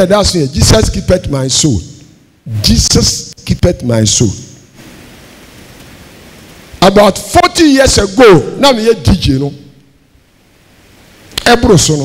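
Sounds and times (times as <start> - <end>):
man talking: 0.0 - 4.6, 6.8 - 9.8, 11.4 - 12.0
steady background hiss: 0.0 - 12.0.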